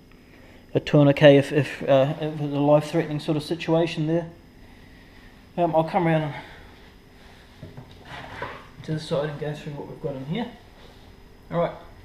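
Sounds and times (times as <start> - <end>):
person speaking: 0.7 - 4.4, 5.5 - 6.7, 8.8 - 10.7.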